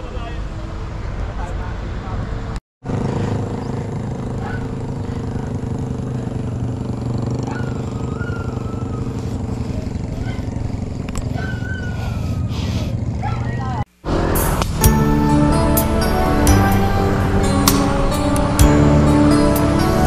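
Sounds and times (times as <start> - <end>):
bicycle tyres on asphalt: 2.9 - 14.3.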